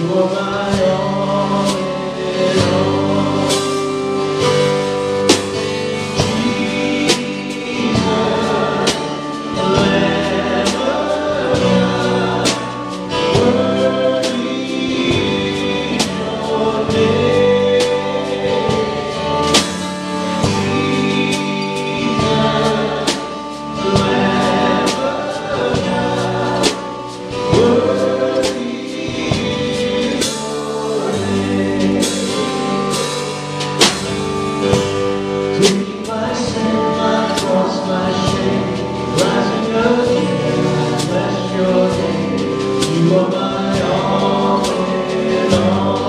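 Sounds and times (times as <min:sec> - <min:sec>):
group of voices singing: 0:00.0 - 0:46.0
worship band playing a hymn: 0:00.0 - 0:46.0.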